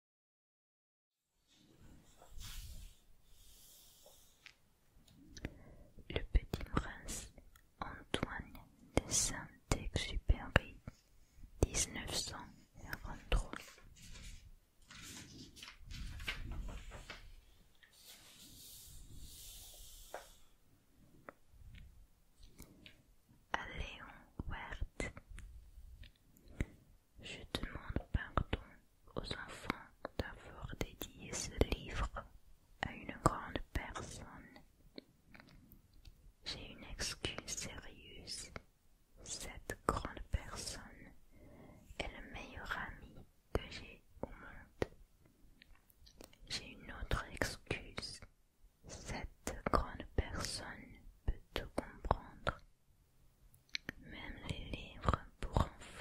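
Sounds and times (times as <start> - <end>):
person whispering: 2.1 - 4.4, 5.2 - 14.4, 17.9 - 20.5, 22.4 - 25.3, 26.4 - 34.7, 36.4 - 45.0, 46.1 - 52.7, 53.8 - 56.0.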